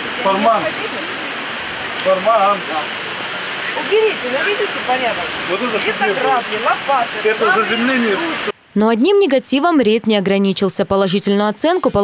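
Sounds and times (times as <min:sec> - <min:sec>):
steady rushing outdoor noise: 0:00.0 - 0:08.8.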